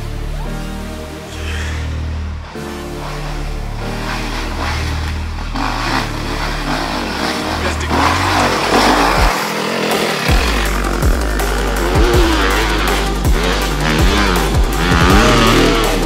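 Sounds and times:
motorcycle engines revving: 0:00.0 - 0:16.0
music with deep bass line: 0:00.0 - 0:16.0.

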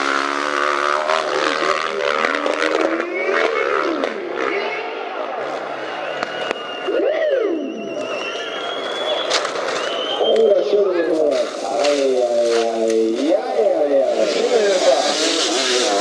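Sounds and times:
dirt bike engines revving: 0:00.0 - 0:16.0.

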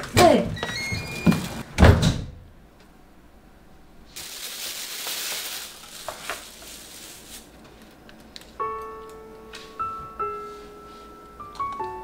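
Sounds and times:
metal door shutting with thud: 0:00.2 - 0:02.4.

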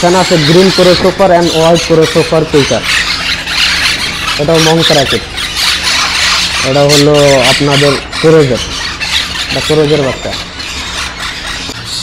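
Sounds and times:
parakeets squawking: 0:00.0 - 0:12.0.

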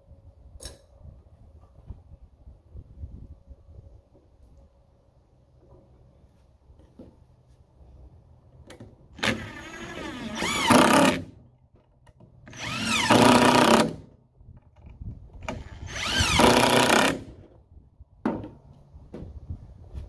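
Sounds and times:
impact driver driving screws: 0:09.2 - 0:11.3, 0:12.5 - 0:14.0, 0:15.4 - 0:17.4.

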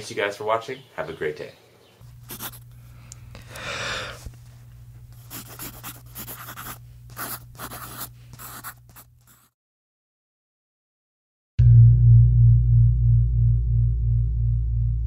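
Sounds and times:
low steady hum: 0:01.9 - 0:09.2, 0:11.6 - 0:15.0
marker pen scratching: 0:02.2 - 0:02.7, 0:05.1 - 0:09.6.

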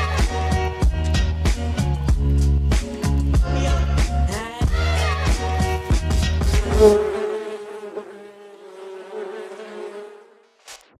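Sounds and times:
honeybees buzzing: 0:05.5 - 0:10.7.

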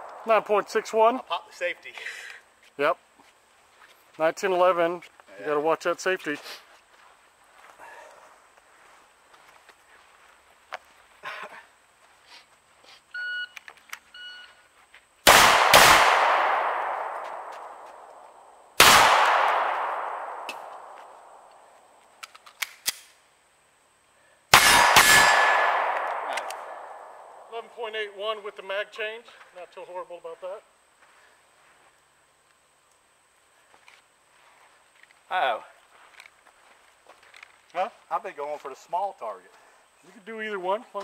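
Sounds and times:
handgun shots: 0:15.3 - 0:17.5, 0:18.8 - 0:21.0, 0:24.6 - 0:27.1.

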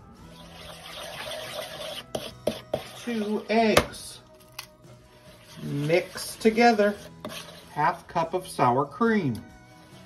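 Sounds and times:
spoon scraping in plastic bowl: 0:00.3 - 0:04.0, 0:05.2 - 0:08.5.

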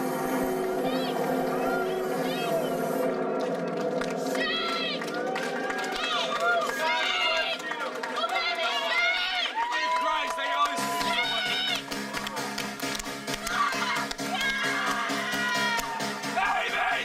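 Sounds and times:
synthesizer drone: 0:00.0 - 0:06.5
crowd shouting and whooping: 0:00.0 - 0:12.6, 0:13.4 - 0:17.0.

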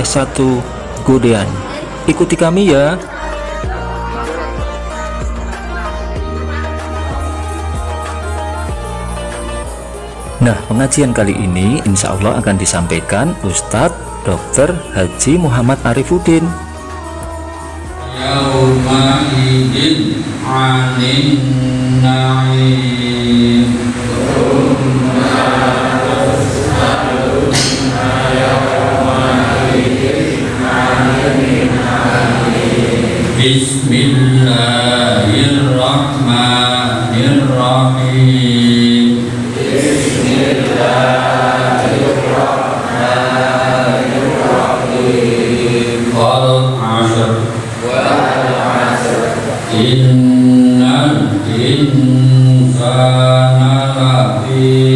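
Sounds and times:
man chanting into microphone: 0:10.2 - 0:16.6, 0:17.9 - 0:54.9.

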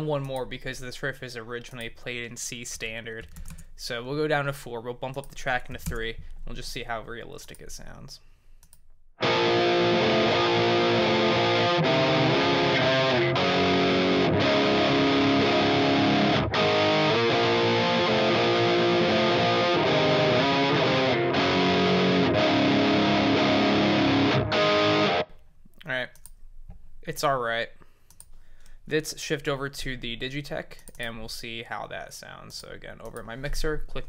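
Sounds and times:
distorted electric guitar riff: 0:09.2 - 0:25.3.

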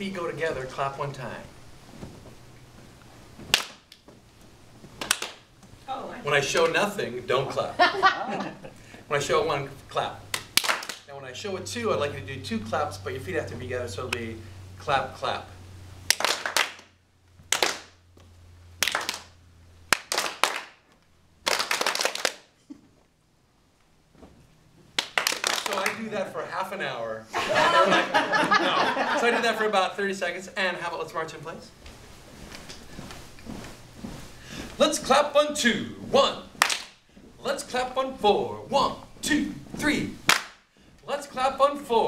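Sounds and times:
group of people clapping: 0:03.5 - 0:03.9, 0:05.0 - 0:05.4, 0:10.3 - 0:11.1, 0:16.1 - 0:16.9, 0:17.5 - 0:18.0, 0:18.8 - 0:20.8, 0:21.4 - 0:22.6, 0:25.0 - 0:26.1, 0:36.6 - 0:37.0, 0:40.3 - 0:40.6.

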